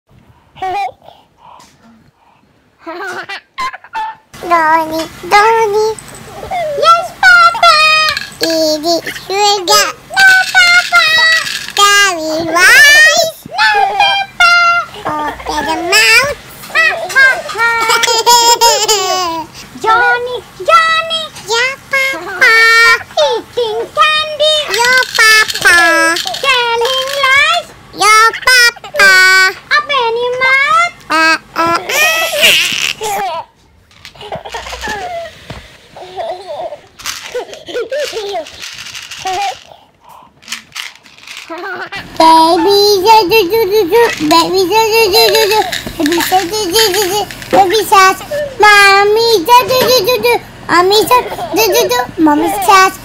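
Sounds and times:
soft voice sounds: 0.6s - 2.2s
child singing: 4.4s - 18.0s, 18.8s - 32.0s, 42.2s - 53.0s.

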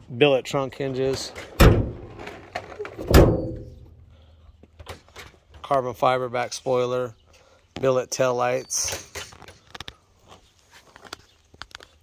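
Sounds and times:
car trunk lid thunk: 3.0s - 3.7s.

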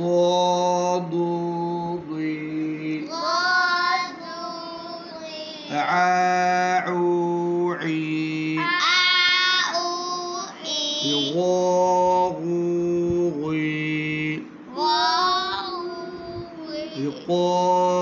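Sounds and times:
person chanting syllables: 5.6s - 10.1s, 10.9s - 14.4s, 16.6s - 18.0s.

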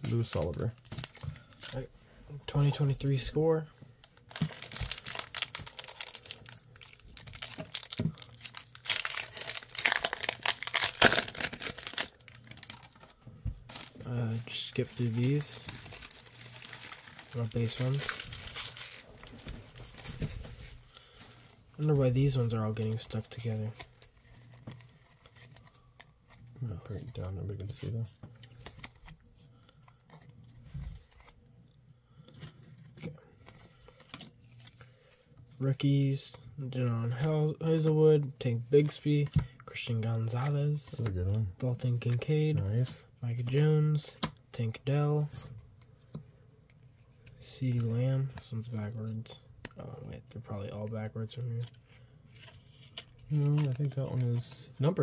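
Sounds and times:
trading cards rustling and clicking: 4.1s - 31.4s, 45.8s - 55.0s
foil wrapper crinkling and tearing: 4.2s - 20.2s.

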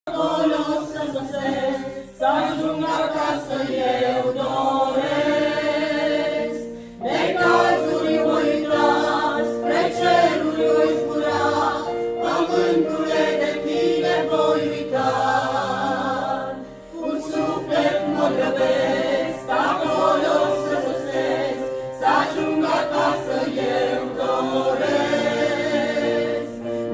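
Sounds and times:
mixed choir singing a hymn: 0.1s - 26.9s.

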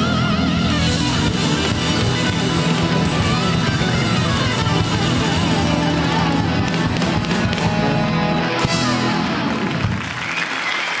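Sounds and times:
live rock band playing: 0.0s - 10.7s
audience applause: 9.1s - 11.0s.

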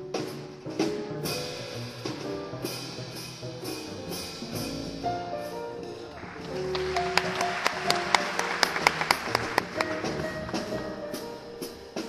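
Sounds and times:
double bass: 0.0s - 12.0s
piano notes: 0.0s - 12.0s.

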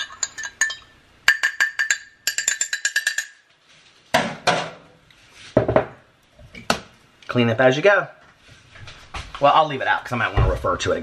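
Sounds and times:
spoon clinking in glass mug: 0.0s - 3.4s.

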